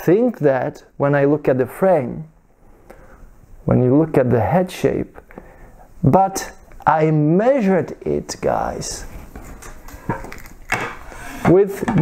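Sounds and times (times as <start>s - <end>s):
soft rustling: 8.5s - 11.5s.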